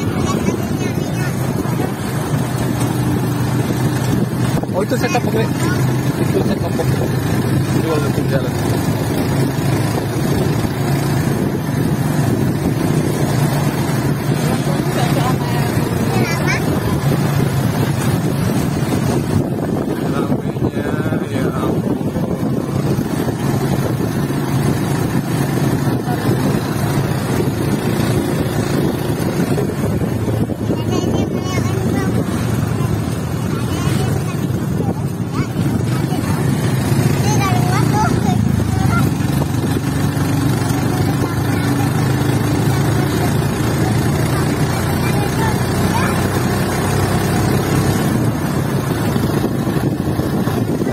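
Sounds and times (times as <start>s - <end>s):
wind noise: 0.0s - 46.4s, 47.0s - 50.9s
motorcycle engine running: 0.0s - 50.9s
road noise: 0.0s - 50.9s.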